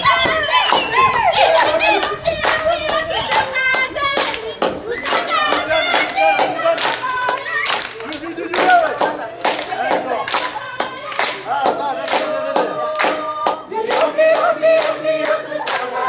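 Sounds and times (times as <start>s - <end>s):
group of people singing: 0.0s - 16.0s
rhythmic hand clapping: 0.0s - 16.0s.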